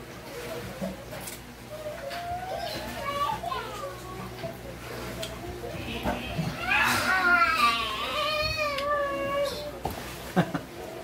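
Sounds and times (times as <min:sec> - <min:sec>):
young child's high voice: 0:01.7 - 0:04.6, 0:06.4 - 0:09.8.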